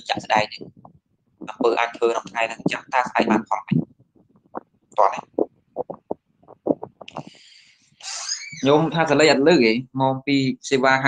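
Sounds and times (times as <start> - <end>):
man talking: 0.0 - 0.7, 1.4 - 3.9, 5.0 - 5.4, 8.1 - 11.0.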